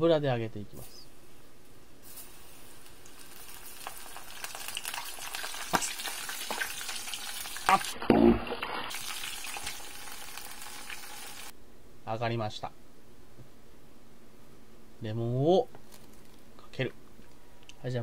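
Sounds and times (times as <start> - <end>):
deep-frying sizzle: 2.0 - 11.5
batter popping and crackling: 2.8 - 9.8.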